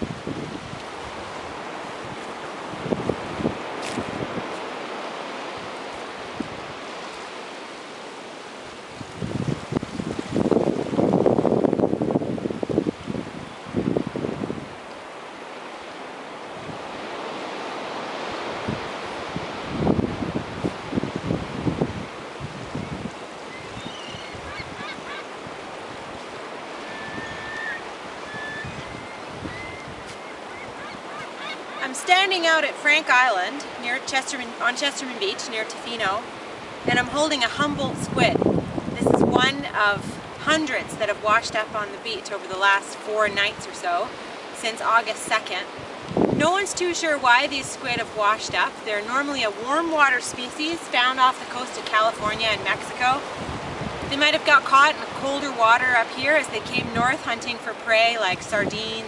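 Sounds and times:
surf washing on sandy beach: 0.0 - 59.0
wind on microphone: 0.0 - 59.0
short bird calls: 23.5 - 25.3, 26.8 - 31.9.

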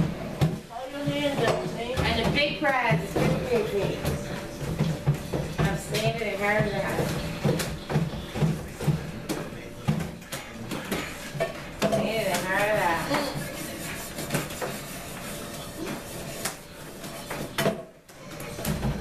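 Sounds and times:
voices: 0.7 - 14.3.

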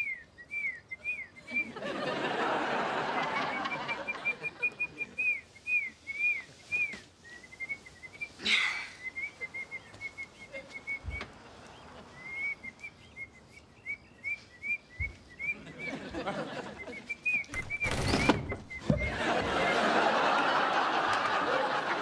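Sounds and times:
whistled birdsong chirps: 0.0 - 21.0.

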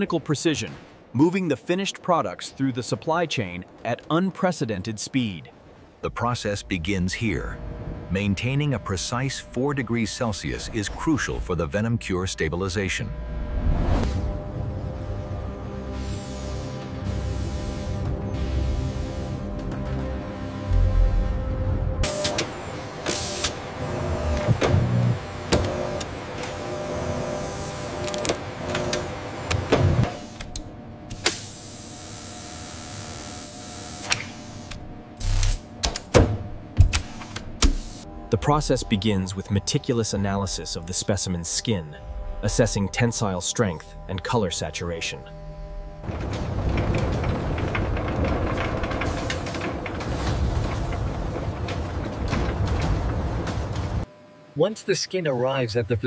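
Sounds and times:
conveyor machinery rumbling: 2.7 - 31.1, 38.1 - 54.1
machinery clicking and clattering: 45.9 - 54.1.

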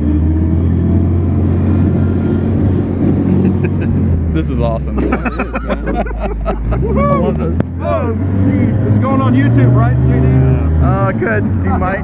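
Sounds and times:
jeep engine running: 0.0 - 12.0.

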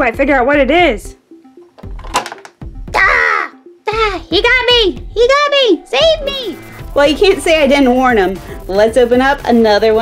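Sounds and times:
light background music: 0.0 - 10.0
toy claw clattering: 1.8 - 2.6.

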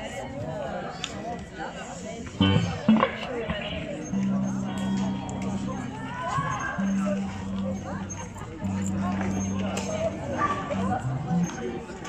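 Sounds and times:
low crowd chatter: 0.0 - 12.0
held instrument note: 2.4 - 11.9.

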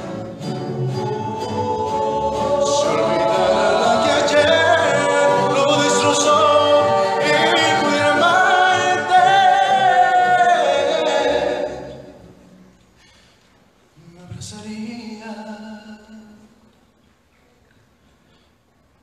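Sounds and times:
mixed voices singing in harmony: 0.0 - 12.5.

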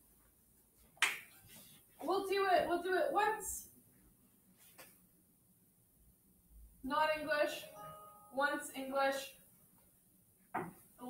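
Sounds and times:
sharp snap: 1.0 - 1.3.

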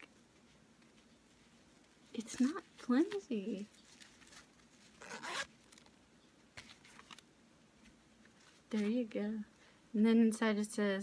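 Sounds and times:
zipper pulled open: 5.0 - 5.9.

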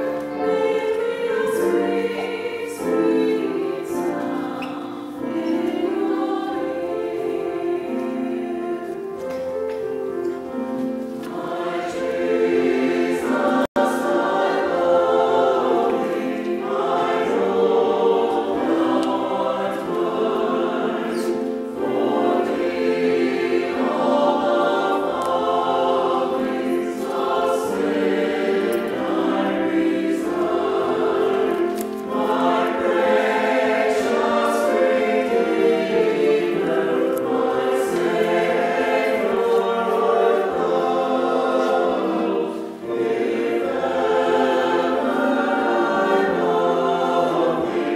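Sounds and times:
church choir singing: 0.0 - 47.9
keyboard accompaniment: 0.0 - 47.9.

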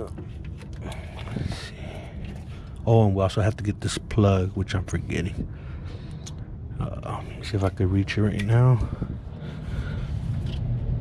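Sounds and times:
faint handling noises: 0.0 - 2.8
steady low hum: 0.0 - 11.0.

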